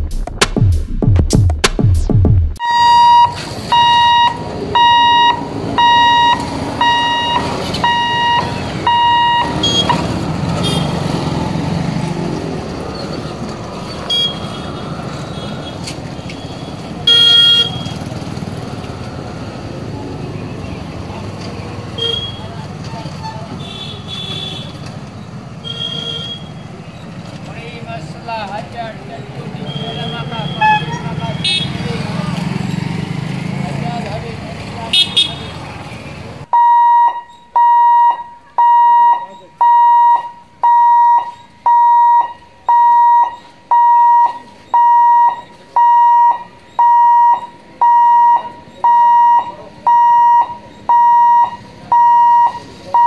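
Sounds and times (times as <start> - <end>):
electronic beeper: 2.6 - 10.0
small vehicles running: 2.8 - 34.9
vehicle horn toots: 10.6 - 11.0, 14.1 - 18.0, 22.0 - 22.5, 23.2 - 24.8, 25.6 - 26.6, 29.6 - 31.8, 34.9 - 35.6.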